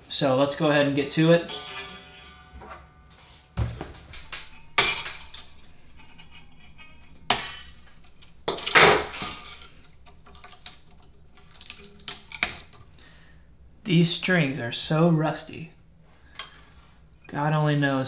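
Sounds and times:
guitar string scrape: 1.4s - 10.6s.

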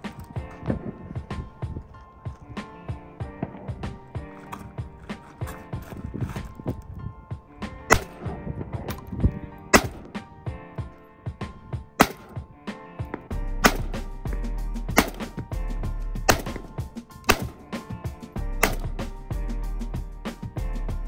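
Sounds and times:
background music with bass: 0.0s - 21.0s
rifle shots: 7.9s - 8.3s, 9.7s - 10.2s, 12.0s - 12.4s, 13.2s - 14.1s, 14.9s - 15.4s, 16.3s - 17.7s, 18.6s - 19.0s.

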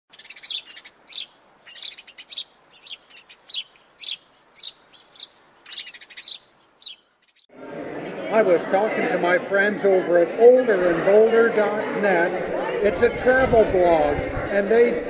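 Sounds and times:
birds chirping: 0.1s - 8.3s.

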